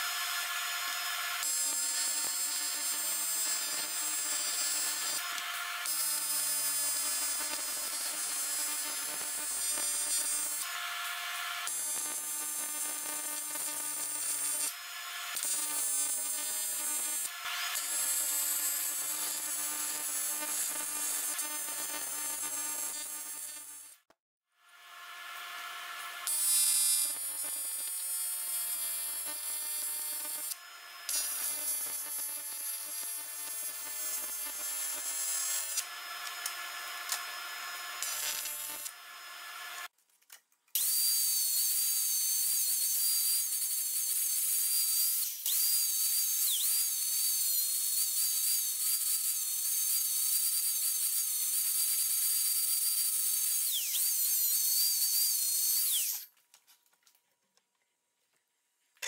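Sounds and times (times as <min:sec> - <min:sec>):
angle grinder whining: 0:00.0 - 0:12.2, 0:25.1 - 0:39.9, 0:40.8 - 0:56.3
small power tool running: 0:00.0 - 0:24.0, 0:24.6 - 0:39.9, 0:40.8 - 0:56.3.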